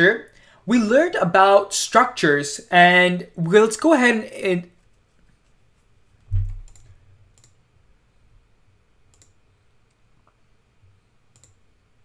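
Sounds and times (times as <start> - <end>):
low room hum: 0.0 - 12.0
computer mouse clicks: 6.2 - 7.6, 9.1 - 10.4, 11.3 - 11.6.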